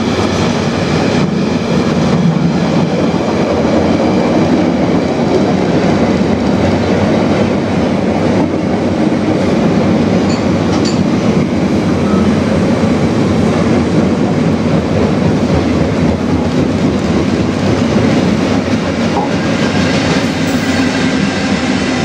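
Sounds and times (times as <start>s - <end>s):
freight train wheels rumbling: 0.0s - 22.0s.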